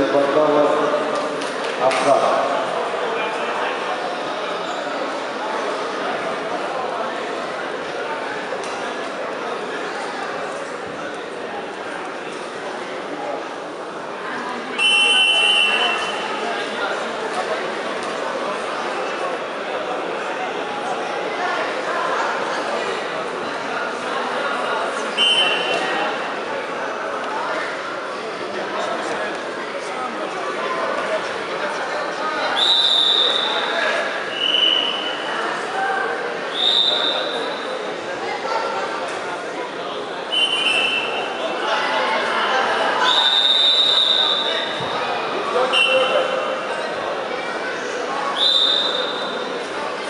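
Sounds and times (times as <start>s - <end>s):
crowd chatter: 0.0s - 50.0s
referee's whistle blasts: 14.8s - 16.2s, 25.2s - 25.8s, 32.5s - 33.7s, 34.3s - 35.2s, 36.5s - 37.6s, 40.3s - 41.3s, 43.0s - 44.7s, 45.7s - 46.4s, 48.4s - 49.4s.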